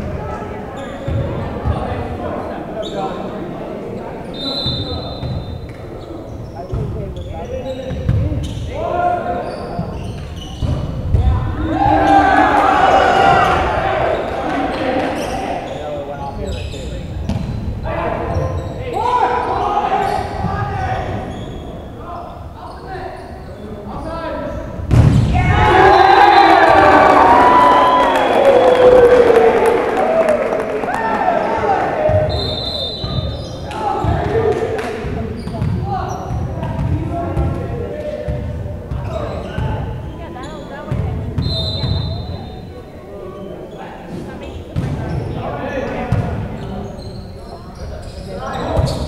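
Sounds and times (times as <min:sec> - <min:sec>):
players shouting: 0:11.2 - 0:15.8, 0:25.2 - 0:34.8.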